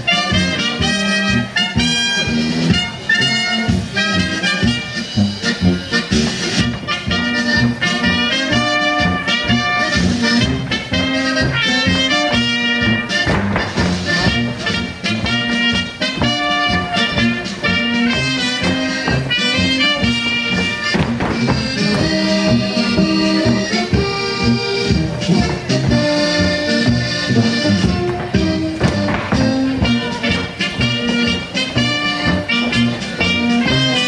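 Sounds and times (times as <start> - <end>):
brass band folk dance music: 0.0 - 34.0.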